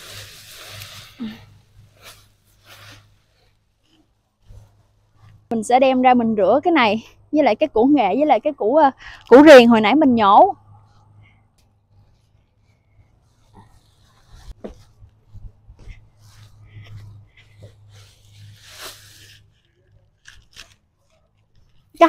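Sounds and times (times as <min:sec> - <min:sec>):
leafy stalks rustling and crackling: 0:00.0 - 0:04.6
soft handling noises: 0:00.0 - 0:05.5, 0:10.7 - 0:22.0.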